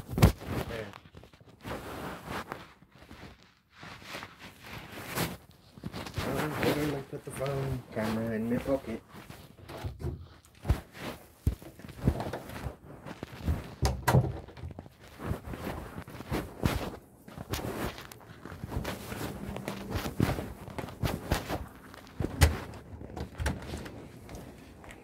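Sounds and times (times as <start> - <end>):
clothing rubbing on microphone: 0.0 - 13.8, 14.6 - 25.0
knocks and thumps from walking: 9.1 - 25.0.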